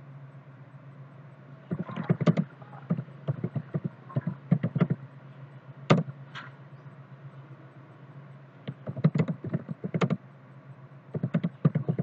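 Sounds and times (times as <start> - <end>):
steady low hum: 0.0 - 12.0
typing on computer keyboard: 8.8 - 10.2, 11.2 - 12.0.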